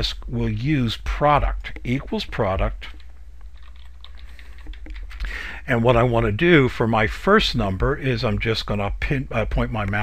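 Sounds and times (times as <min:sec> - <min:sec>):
typing on computer keyboard: 0:01.7 - 0:05.3.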